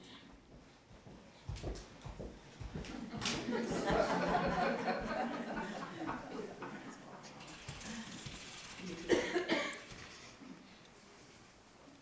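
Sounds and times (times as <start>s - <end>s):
person coughing: 9.1s - 9.8s.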